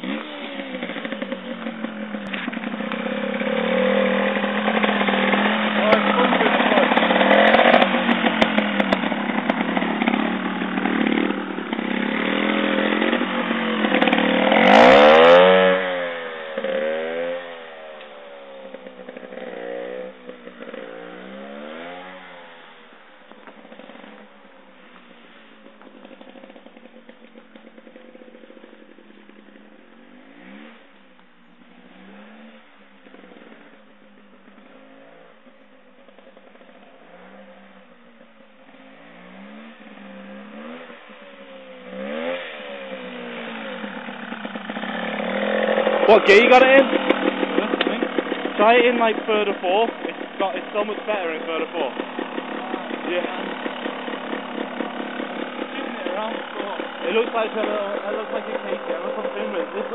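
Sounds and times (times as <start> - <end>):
motorbike throttle blips: 0.0 - 35.2, 36.0 - 59.9
two-stroke motorbike engine revving: 0.0 - 59.9.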